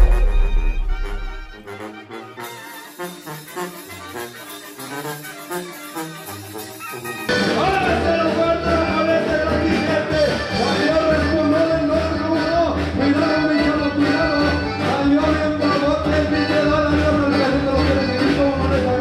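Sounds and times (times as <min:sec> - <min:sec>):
deep boom: 0:00.0 - 0:01.6
louder music with held notes: 0:00.0 - 0:19.0.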